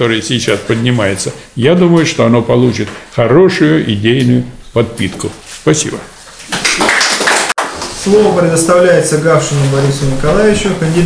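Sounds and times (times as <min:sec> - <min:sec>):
small audience applauding: 0:06.5 - 0:08.3.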